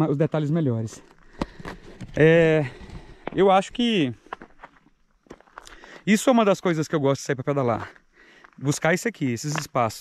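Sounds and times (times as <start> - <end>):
footsteps on gravel: 0.9 - 6.6, 7.6 - 10.0.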